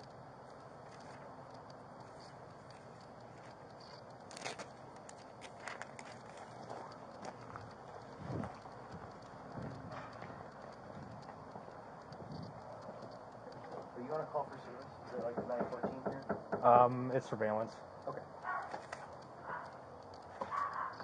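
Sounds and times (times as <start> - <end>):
gear rustling: 0.0 - 14.8
sharp clicks: 0.0 - 21.0
footsteps on hard ground: 2.0 - 13.9.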